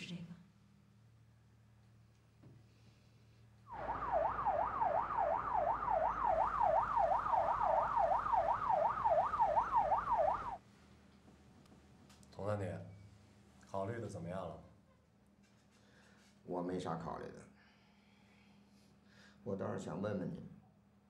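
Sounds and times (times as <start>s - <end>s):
car noise rushing: 3.7s - 10.6s
police siren yelping: 3.7s - 10.6s.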